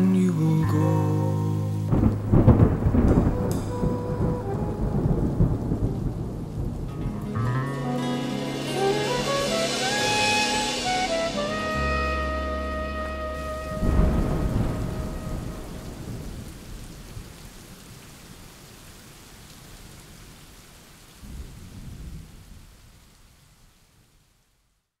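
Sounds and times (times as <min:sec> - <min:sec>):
steady rain: 0:00.0 - 0:25.0
thunder rumbling: 0:01.9 - 0:17.6.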